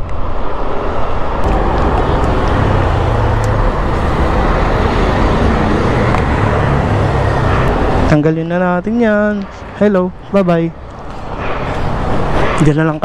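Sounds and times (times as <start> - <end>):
wind and road noise: 0.0 - 13.0
scooter engine humming: 0.6 - 8.2.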